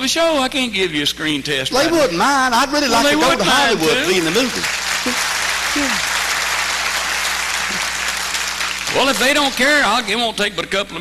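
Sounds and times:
man talking: 0:00.0 - 0:04.7
audience applauding: 0:03.4 - 0:10.1.

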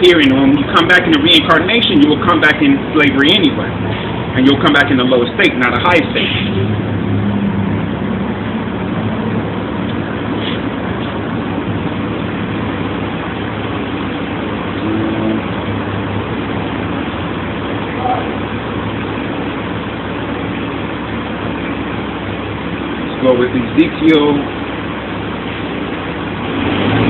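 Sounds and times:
bus engine running: 0:00.0 - 0:27.0
city traffic: 0:00.0 - 0:27.0.

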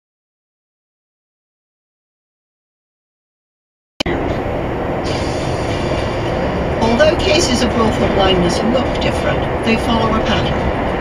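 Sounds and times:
road and engine rumble in car: 0:04.0 - 0:11.0.

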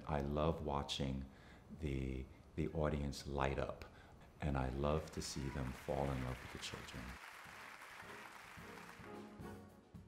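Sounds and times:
audience applauding: 0:05.0 - 0:09.5.

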